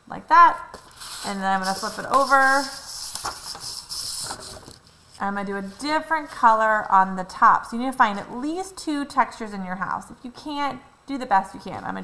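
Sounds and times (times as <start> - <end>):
paper rustling: 0.8 - 6.0
paper scraping on plastic: 0.9 - 6.0.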